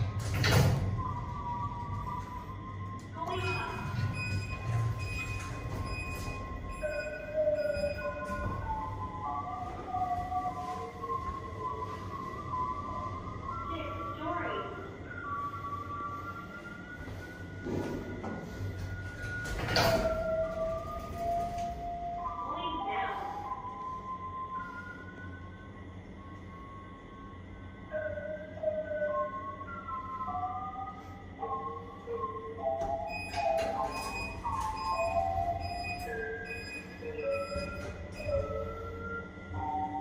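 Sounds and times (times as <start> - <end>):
lift doors sliding: 0.0 - 13.7, 15.0 - 22.4, 32.6 - 40.0.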